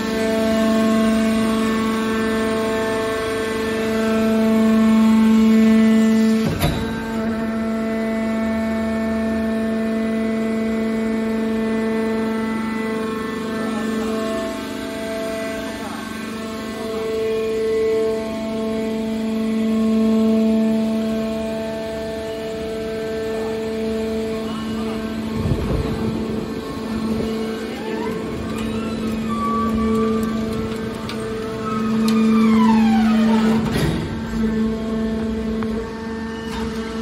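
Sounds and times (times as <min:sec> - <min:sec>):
hydraulic power unit humming: 0:00.0 - 0:37.0.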